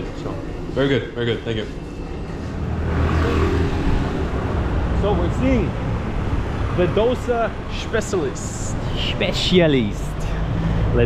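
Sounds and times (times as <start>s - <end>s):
passing vehicles: 0.0s - 11.0s.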